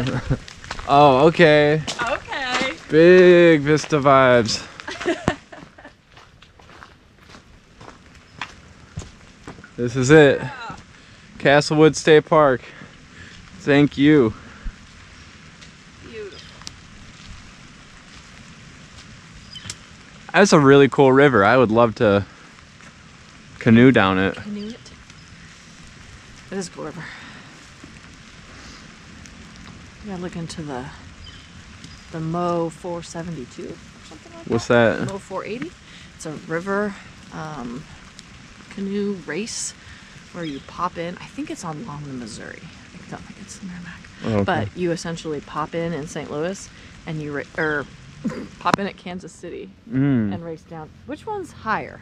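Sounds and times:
footsteps on gravel: 0.0s - 9.8s
light drizzle falling: 0.0s - 52.0s
raindrops ticking near microphone: 0.0s - 52.0s.

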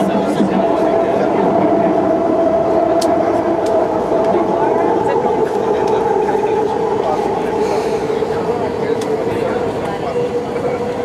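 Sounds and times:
train rolling rumble: 0.0s - 11.0s
train whine: 0.0s - 11.0s.

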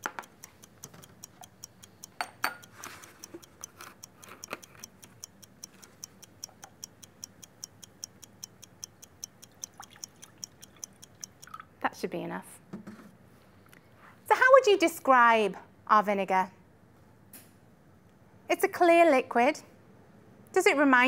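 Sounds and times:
fast clock-like ticking: 0.0s - 11.6s
beakers and cups clinking: 2.2s - 2.7s, 9.6s - 11.7s.

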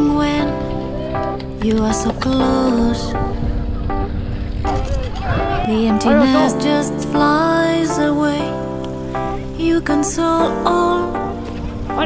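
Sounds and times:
held music chords: 0.0s - 12.0s.

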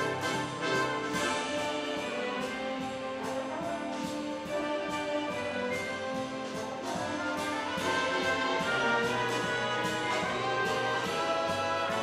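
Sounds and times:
big band orchestra playing: 0.0s - 12.0s
drum kit beat: 0.0s - 12.0s.

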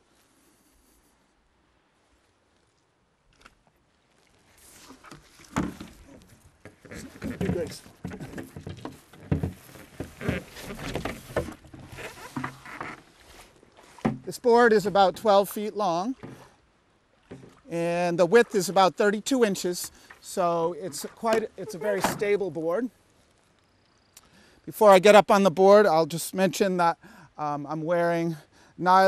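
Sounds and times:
feet splashing in shallow water: 2.3s - 15.4s
paddleboard knocking and scuffing: 3.4s - 15.4s, 16.1s - 16.5s, 17.2s - 17.7s, 19.4s - 22.6s.

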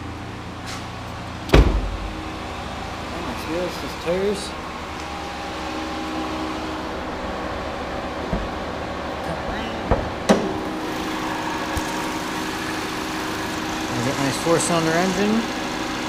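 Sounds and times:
car engine idling: 0.0s - 16.0s
hood clicks and clunks: 8.2s - 8.7s, 9.8s - 10.7s.

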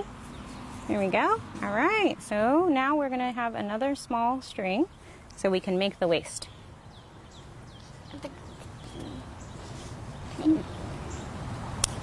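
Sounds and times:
birds chirping: 3.5s - 12.0s.

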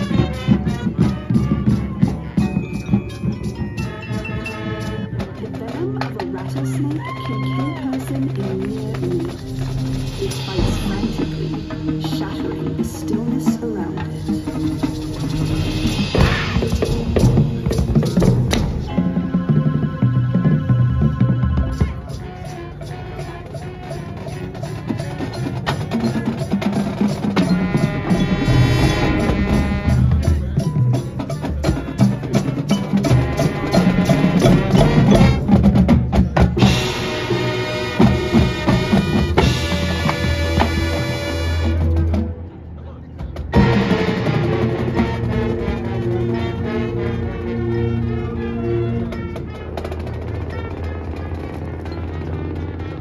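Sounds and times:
drumline snare and bass drums: 0.0s - 46.9s, 49.0s - 53.0s
mallet percussion: 0.0s - 53.0s
wind chords: 7.8s - 53.0s.

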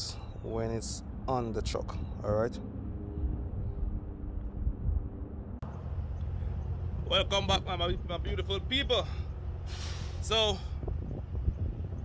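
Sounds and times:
faint engine hum: 0.0s - 12.0s
wind on microphone: 2.8s - 5.6s, 9.7s - 12.0s.

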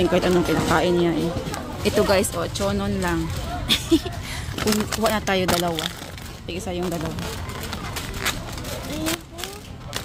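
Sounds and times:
store noise: 0.0s - 10.0s
plastic snack bag crinkling: 4.6s - 10.0s.

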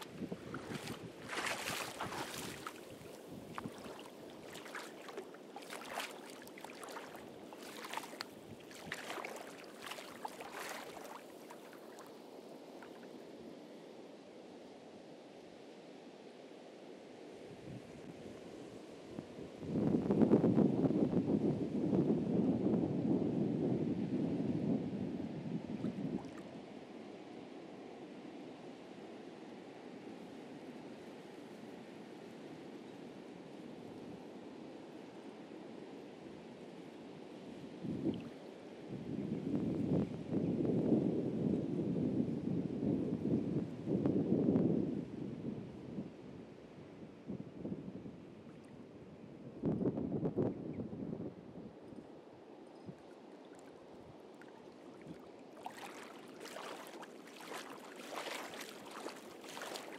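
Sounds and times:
wind buffeting microphone: 0.0s - 12.0s, 19.6s - 26.4s, 38.9s - 46.1s
surf washing on a beach: 0.0s - 14.0s, 53.1s - 59.9s.

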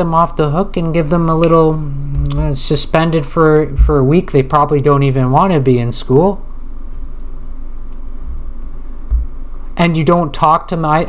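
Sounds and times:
steady low hum: 0.0s - 11.0s
deep rumble: 1.8s - 4.5s, 8.2s - 9.5s.

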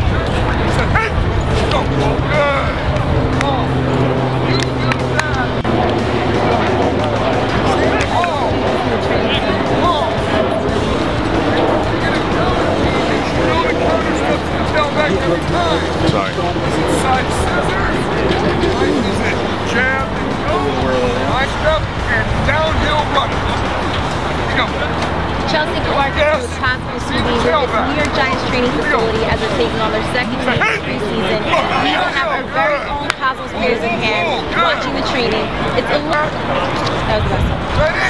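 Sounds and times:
background music: 0.0s - 38.0s
people shouting and chattering: 0.0s - 38.0s.

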